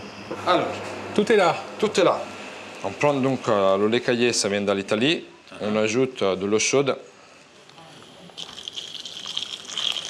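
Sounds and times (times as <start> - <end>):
hot water pouring into bowl: 8.4 - 10.0.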